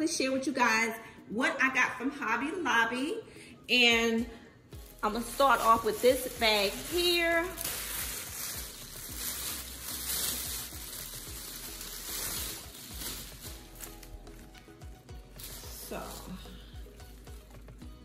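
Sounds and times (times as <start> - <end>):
soft background music: 0.0 - 18.0
plastic bags rustling: 4.8 - 17.9.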